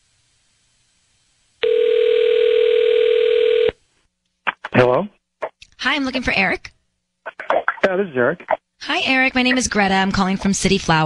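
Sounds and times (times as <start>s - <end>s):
telephone ringback tone: 1.6s - 3.8s.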